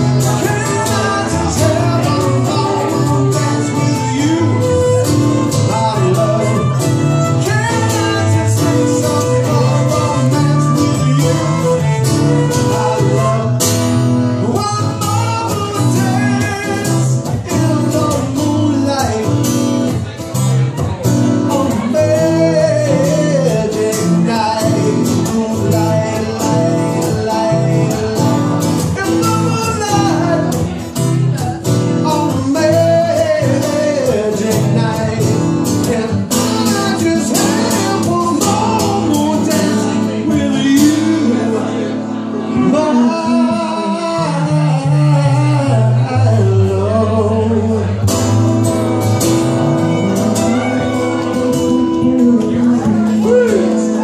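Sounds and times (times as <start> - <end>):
electric guitar: 0.0 - 54.0
strummed acoustic guitar: 0.0 - 54.0
bowed fiddle with sliding notes: 1.0 - 13.5.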